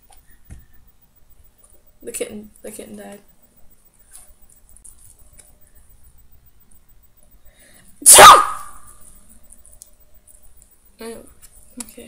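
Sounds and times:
person sneezing: 0:08.0 - 0:08.7.

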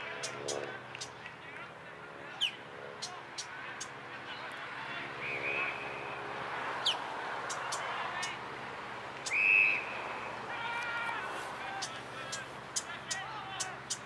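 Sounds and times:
spectators calling out: 0:09.2 - 0:14.0
referee whistle blasts: 0:09.3 - 0:10.0.

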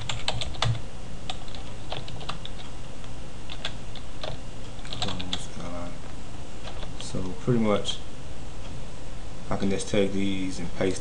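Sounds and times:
keyboard typing clicks: 0:03.5 - 0:05.4.

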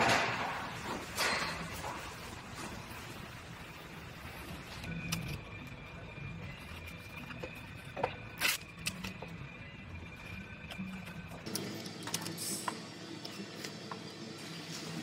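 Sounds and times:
workshop background hum: 0:00.0 - 0:15.0.

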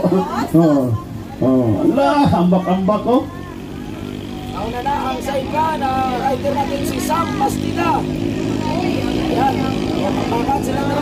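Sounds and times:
jet ski engines droning: 0:00.0 - 0:11.0
people talking: 0:00.0 - 0:11.0.

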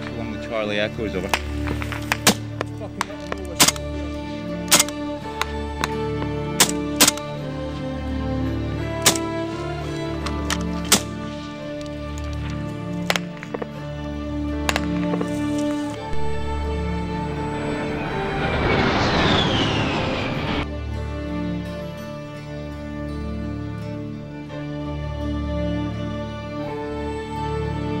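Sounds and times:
background music with sustained chords: 0:00.0 - 0:28.0.

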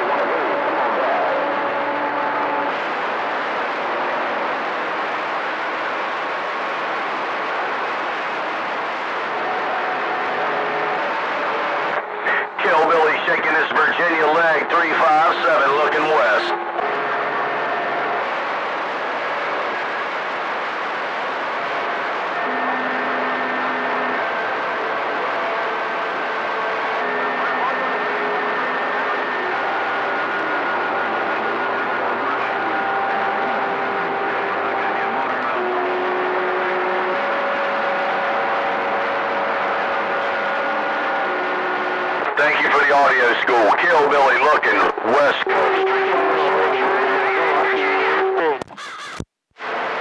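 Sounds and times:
radio static hiss: 0:00.0 - 0:50.0.

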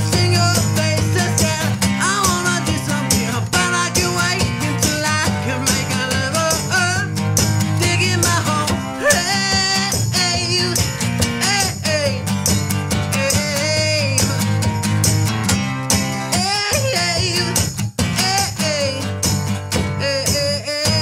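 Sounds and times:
strummed guitar: 0:00.0 - 0:21.0.

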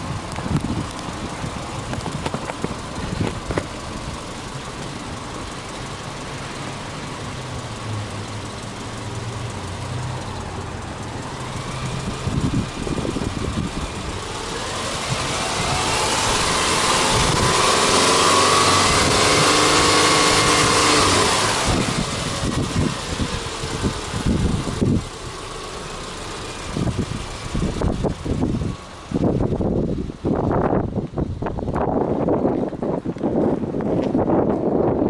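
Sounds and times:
car engine idling: 0:00.0 - 0:35.0
steady rushing noise: 0:10.4 - 0:35.0.

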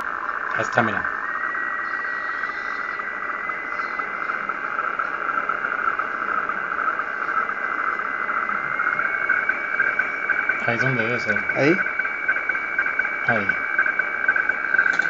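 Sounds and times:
rasping digital data tone: 0:00.0 - 0:15.0
thin steady whistle: 0:00.0 - 0:15.0.

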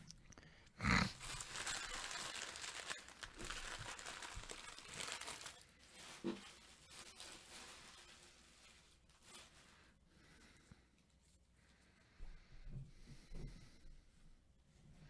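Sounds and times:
card wrappers crinkling: 0:01.1 - 0:09.7.

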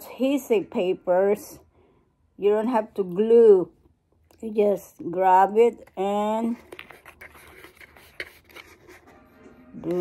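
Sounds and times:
adhesive paper rustling: 0:06.5 - 0:09.2.

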